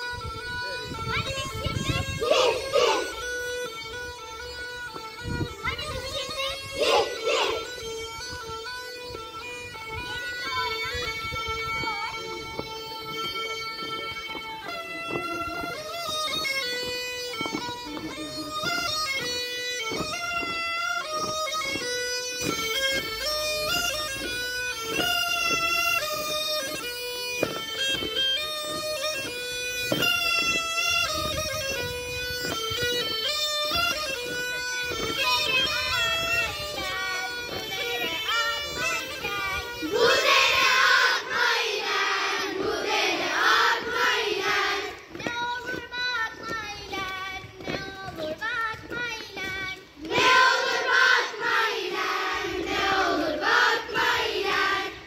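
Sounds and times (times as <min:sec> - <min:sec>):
bagpipe playing dance tune: 0:00.0 - 0:55.0.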